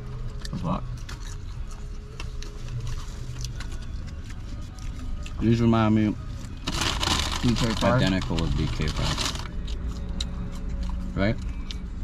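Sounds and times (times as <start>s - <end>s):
chewing: 0.1s - 5.8s, 9.4s - 12.0s
foil wrapper crinkling: 6.6s - 9.6s.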